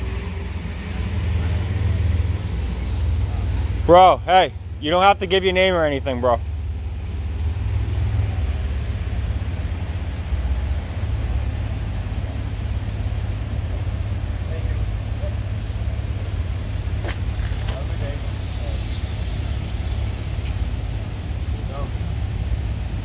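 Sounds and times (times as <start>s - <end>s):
street traffic rumble: 0.0s - 23.0s.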